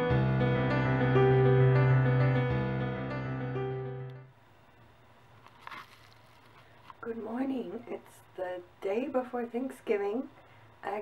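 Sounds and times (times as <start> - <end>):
soft rustle: 5.3 - 7.1.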